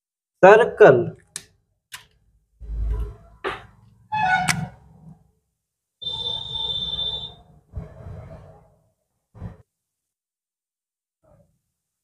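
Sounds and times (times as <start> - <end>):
felt-tip marker squeaking on paper: 4.2 - 4.7.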